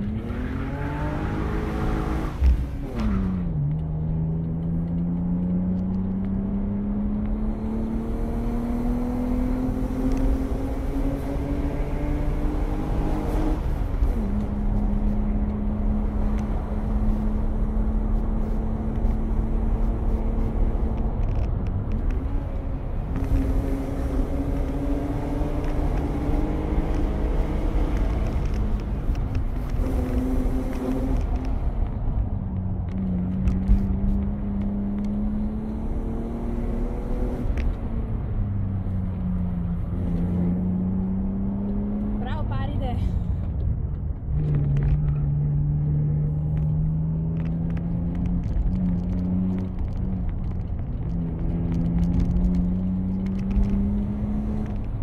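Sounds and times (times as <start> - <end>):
car engine revving: 0.0 - 43.1, 43.8 - 55.0.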